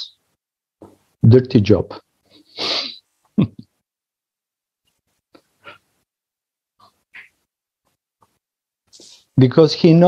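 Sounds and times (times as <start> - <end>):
man laughing softly: 2.4 - 3.8.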